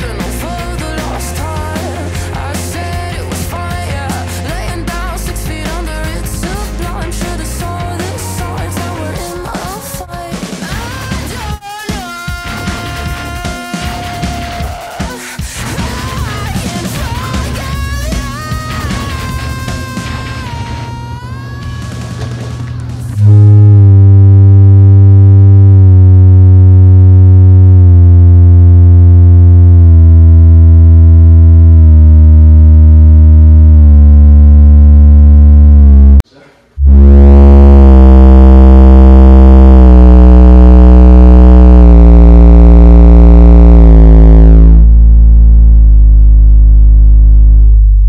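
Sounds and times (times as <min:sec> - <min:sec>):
synthesizer chords over heavy bass: 0:00.0 - 0:10.1, 0:23.1 - 0:36.2, 0:36.8 - 0:48.0.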